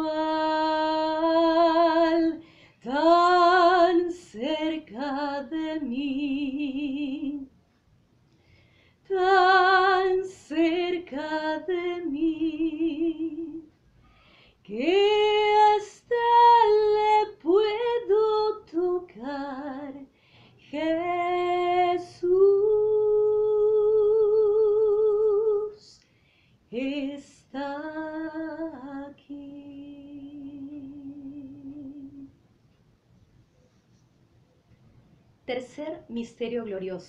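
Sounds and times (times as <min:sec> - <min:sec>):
woman singing unaccompanied: 0:00.0 - 0:07.5, 0:09.1 - 0:13.7, 0:14.7 - 0:26.0, 0:26.7 - 0:32.3.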